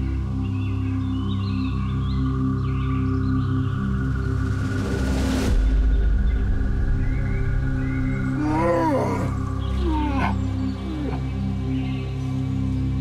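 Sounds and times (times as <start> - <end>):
droning background music: 0.0 - 13.0
bear cub crying: 8.2 - 11.5.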